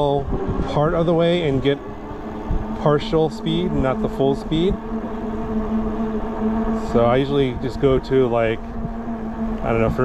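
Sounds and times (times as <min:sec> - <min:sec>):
electric motor whine: 0:00.0 - 0:10.0.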